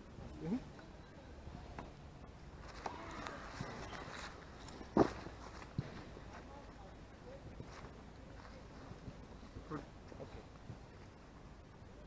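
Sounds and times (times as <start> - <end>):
footsteps in grass: 2.6 - 6.5.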